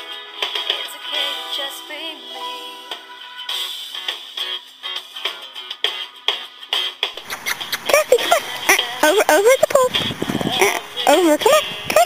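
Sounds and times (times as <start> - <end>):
dog whining: 7.2 - 8.4.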